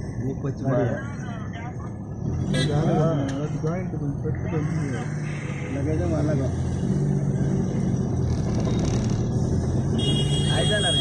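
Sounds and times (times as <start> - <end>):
car interior drone: 0.0 - 10.8.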